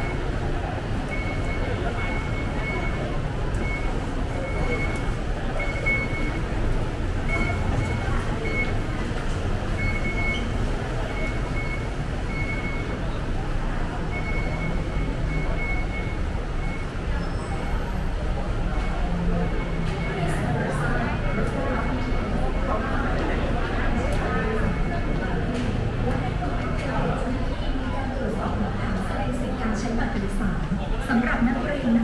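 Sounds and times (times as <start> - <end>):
crowd chatter: 0.0 - 32.0.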